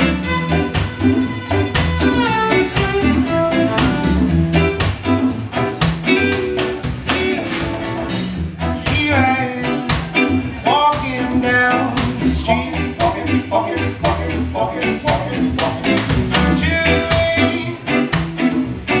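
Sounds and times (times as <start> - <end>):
bowed viola melody: 0.0 - 4.8
live reggae band: 0.0 - 19.0.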